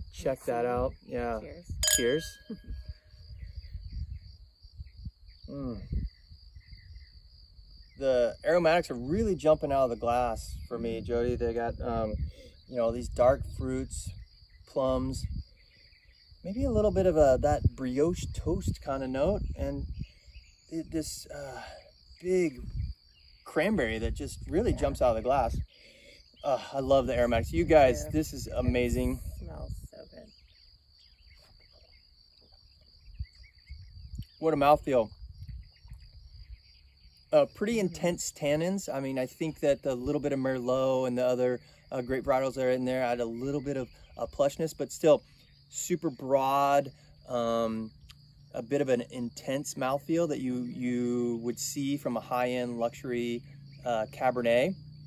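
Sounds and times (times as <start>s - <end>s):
wind rumble on microphone: 0.0s - 25.7s, 26.6s - 37.2s
insects trilling: 0.0s - 55.0s
faint bird chirps: 0.1s - 55.0s
steady high-pitched hum: 0.2s - 4.2s.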